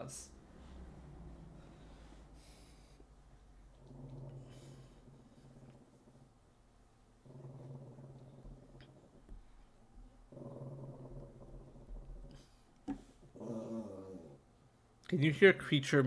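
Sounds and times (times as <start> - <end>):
pet making low drawn-out sounds: 0.0 - 14.6.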